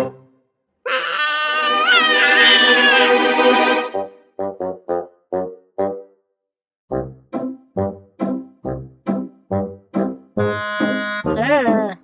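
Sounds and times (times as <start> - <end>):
cartoon kitten angry wail: 0.9 - 3.2.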